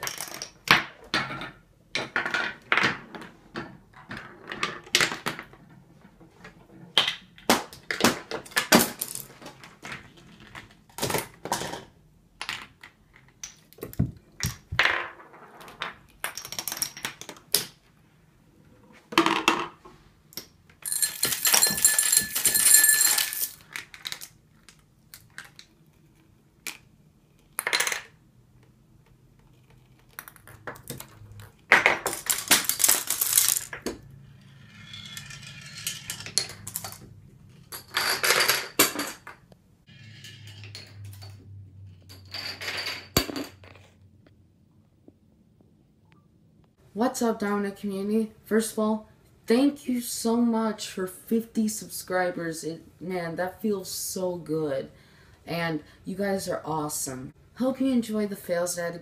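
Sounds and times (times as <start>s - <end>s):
balls rolling and dropping on track: 0.0s - 17.8s, 19.1s - 24.4s, 27.6s - 28.3s, 30.2s - 44.3s
wooden blocks and dominoes toppling: 6.5s - 17.8s, 20.8s - 25.8s, 30.1s - 37.1s.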